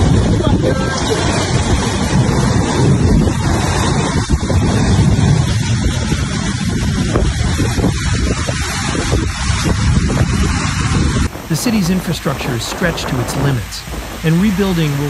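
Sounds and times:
floodwater rushing: 0:00.0 - 0:15.0.

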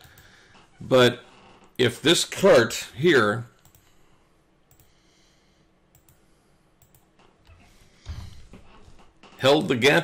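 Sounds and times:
computer mouse clicks: 0:00.0 - 0:00.3, 0:03.6 - 0:03.9, 0:04.7 - 0:05.0, 0:05.9 - 0:06.2, 0:06.8 - 0:07.6.

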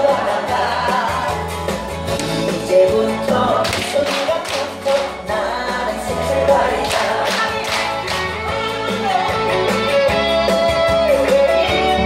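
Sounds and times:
upbeat song with singing: 0:00.0 - 0:12.0.

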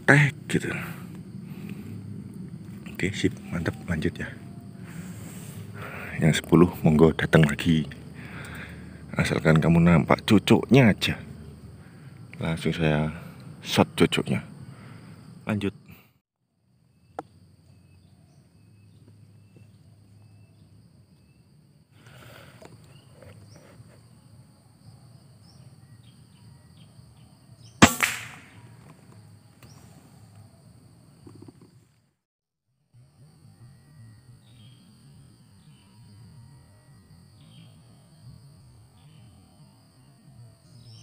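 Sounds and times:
air rifle shot: 0:27.8 - 0:28.8.

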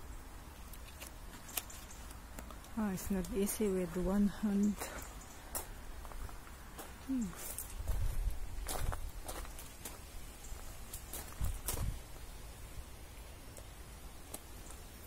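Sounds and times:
rustling leaves: 0:00.0 - 0:15.0.

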